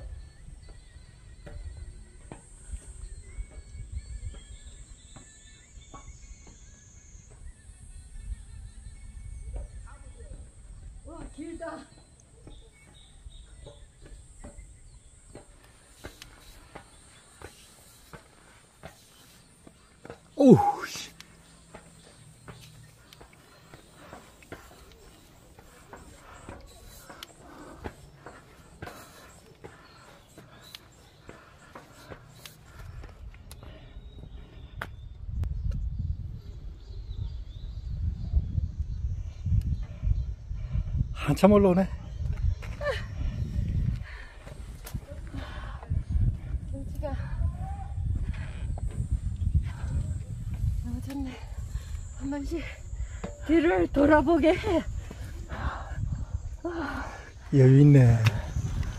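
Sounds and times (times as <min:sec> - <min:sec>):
footsteps on steel-grate stairs: 0:13.6 - 0:34.4
high insect drone: 0:44.6 - 0:58.9.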